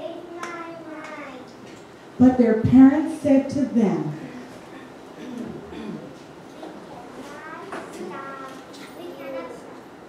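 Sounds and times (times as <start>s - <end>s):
distant child speaking: 0.0s - 1.6s, 6.5s - 9.9s.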